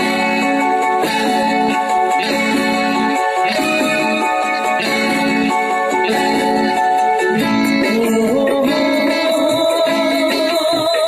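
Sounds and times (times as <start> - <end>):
guitar strumming: 0.0 - 11.0
recorded film song: 0.0 - 11.0.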